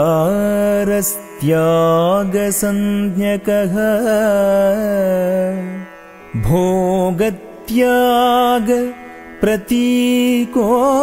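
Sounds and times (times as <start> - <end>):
solo voice singing: 0.0 - 5.8, 6.4 - 11.0.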